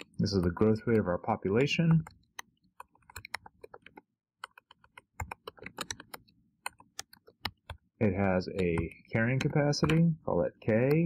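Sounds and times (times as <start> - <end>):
keyboard typing: 0.0 - 11.0.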